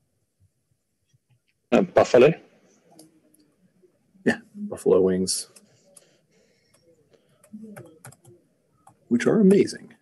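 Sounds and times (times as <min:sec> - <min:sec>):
typing on computer keyboard: 0:07.4 - 0:09.7.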